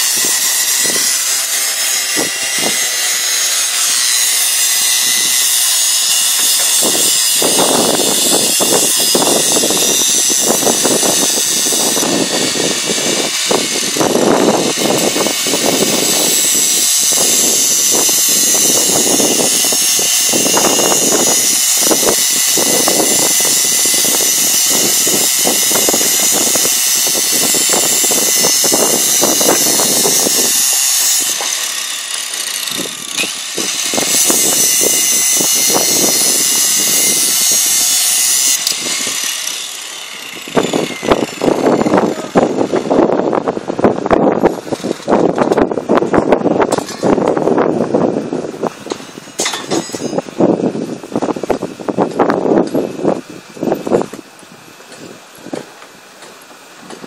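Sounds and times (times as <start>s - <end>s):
strand pusher machine whirring: 0.0s - 44.8s.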